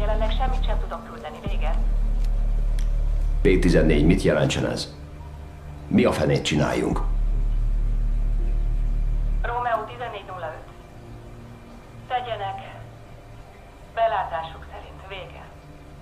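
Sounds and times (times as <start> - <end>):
loud low steady hum: 0.0 - 13.0.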